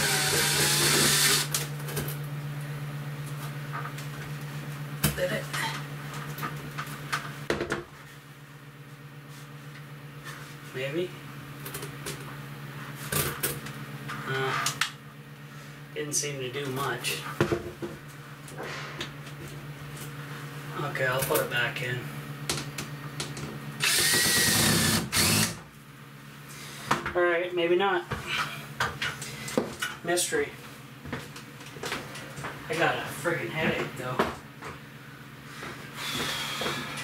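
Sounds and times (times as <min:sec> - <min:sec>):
small fan humming: 0:00.0 - 0:37.0.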